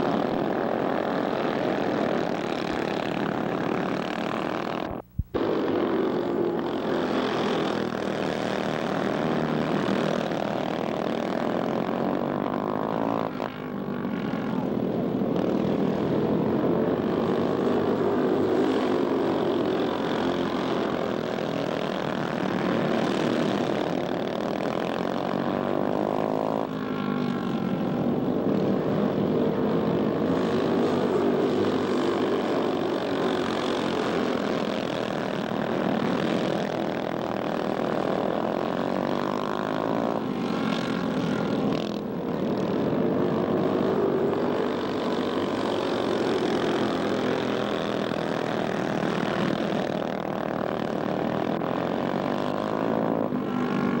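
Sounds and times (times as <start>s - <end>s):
go-kart engines buzzing: 0.0s - 54.0s.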